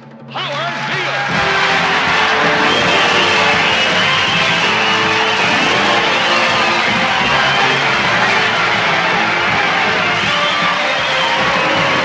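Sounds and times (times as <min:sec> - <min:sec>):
loud stage music: 0:00.0 - 0:12.0
audience applause and cheering: 0:00.4 - 0:12.0.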